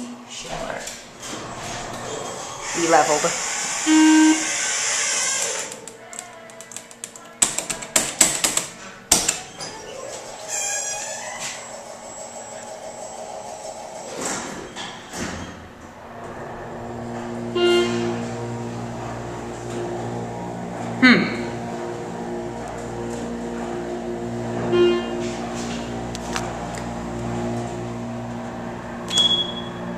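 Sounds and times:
hydraulic pump motor humming: 0:02.6 - 0:05.9
short pitched tone: 0:03.8 - 0:04.5, 0:17.6 - 0:18.1, 0:29.1 - 0:29.9
elevator door clicks and knocks: 0:07.0 - 0:09.4.

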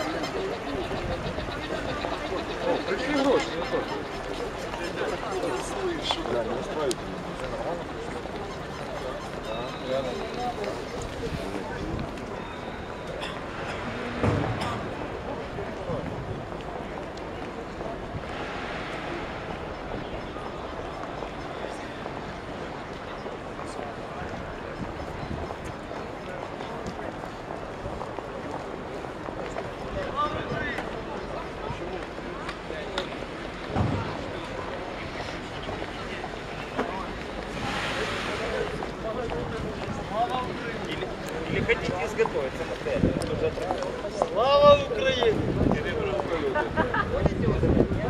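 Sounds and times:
city traffic noise: 0:00.0 - 0:48.0
passers-by talking: 0:00.0 - 0:48.0
wind on microphone: 0:45.2 - 0:46.2, 0:47.0 - 0:48.0.

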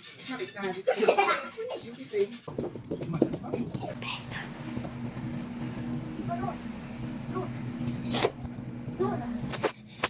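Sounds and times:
low steady hum: 0:02.5 - 0:10.0.

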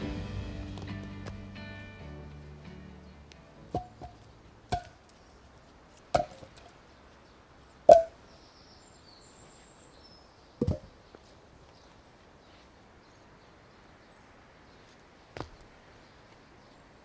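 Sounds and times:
wooden logs knocking: 0:03.7 - 0:05.1, 0:06.1 - 0:06.8, 0:07.9 - 0:08.1, 0:10.6 - 0:10.9.

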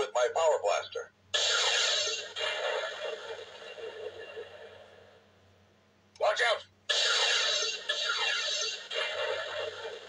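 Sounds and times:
toy electronic sound effect: 0:01.4 - 0:02.9, 0:06.9 - 0:10.0.

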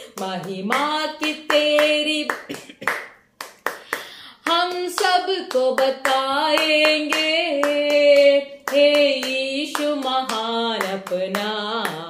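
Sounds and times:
woman singing: 0:00.0 - 0:02.6, 0:04.4 - 0:12.0
hands clapping in rhythm: 0:00.0 - 0:12.0.

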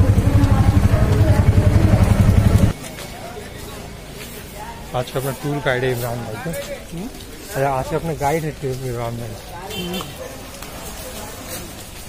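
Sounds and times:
small engine running: 0:00.0 - 0:02.8
street background: 0:00.0 - 0:12.0
street voices: 0:00.0 - 0:12.0.

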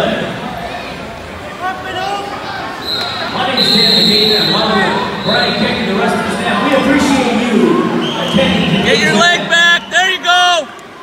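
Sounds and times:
voices calling out in echoing gym: 0:00.0 - 0:11.0.

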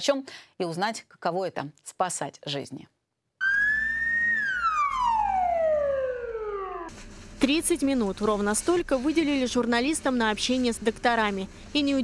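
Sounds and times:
ambulance siren wail: 0:03.4 - 0:06.9.

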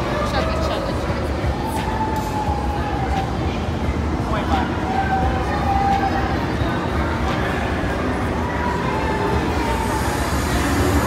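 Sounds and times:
steam hissing: 0:09.6 - 0:11.0.

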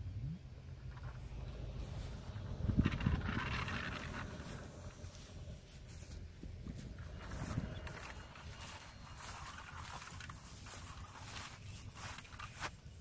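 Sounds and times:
low wind rumble on microphone: 0:00.0 - 0:13.0.

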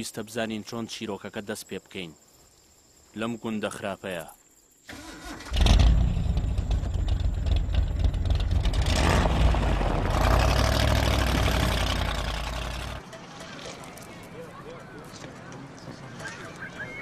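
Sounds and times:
car engine running: 0:05.7 - 0:13.0.

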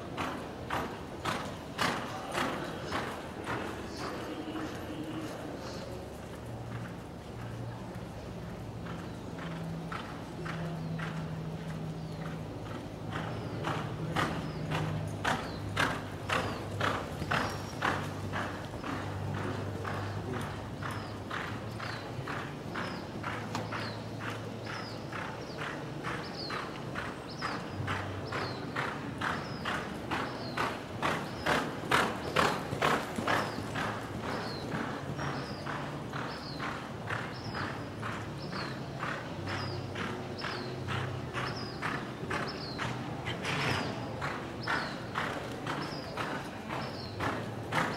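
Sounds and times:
horse hoofbeats on dirt: 0:00.1 - 0:47.9.

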